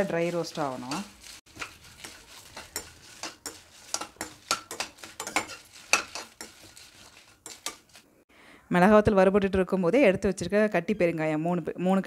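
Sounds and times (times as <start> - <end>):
metal spoon scraping a metal pan: 0.0 - 8.1.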